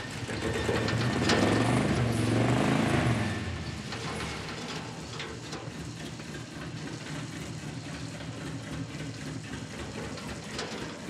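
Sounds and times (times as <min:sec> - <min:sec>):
car engine rumbling: 0:00.1 - 0:10.4.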